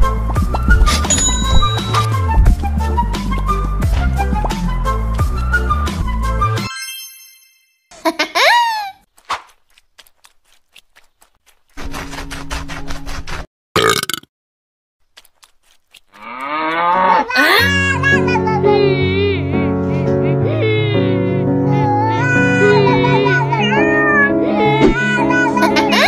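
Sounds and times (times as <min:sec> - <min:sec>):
music: 0:00.0 - 0:07.0, 0:17.6 - 0:26.0
ringing chime: 0:01.0 - 0:02.3, 0:06.7 - 0:07.9.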